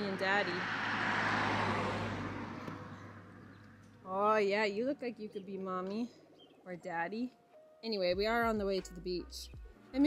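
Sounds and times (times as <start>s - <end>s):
vehicle passing: 0.0s - 6.4s.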